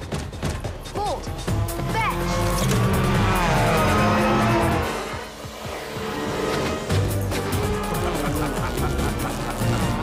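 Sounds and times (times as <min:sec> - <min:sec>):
motorcycle sound effects: 0:01.2 - 0:10.0
orchestral music: 0:01.2 - 0:10.0.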